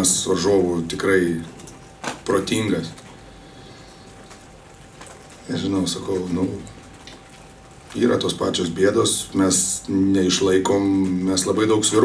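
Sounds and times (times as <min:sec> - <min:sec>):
faint steady hum: 0:00.0 - 0:12.0
room hiss: 0:00.0 - 0:12.0.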